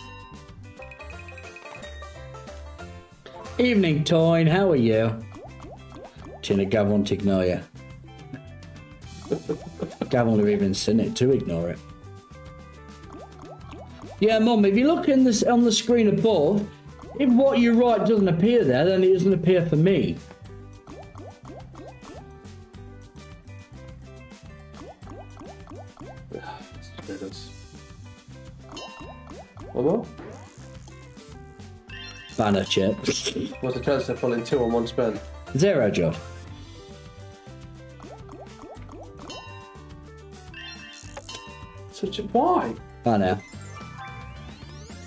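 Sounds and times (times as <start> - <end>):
looping slot game music: 0.0 - 45.0
rising bubbly bloops: 5.2 - 6.5, 13.0 - 14.2, 20.9 - 22.2, 24.8 - 26.3, 38.0 - 39.4.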